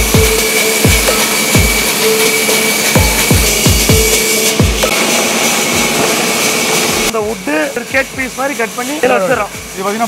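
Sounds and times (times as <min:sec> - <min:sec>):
band sawmill cutting log: 0:00.0 - 0:10.0.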